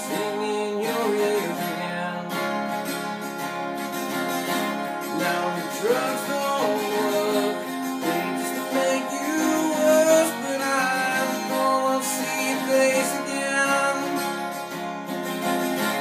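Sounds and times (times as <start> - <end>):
man singing: 0.0 - 2.8, 5.0 - 14.8
acoustic guitar strumming: 0.0 - 16.0.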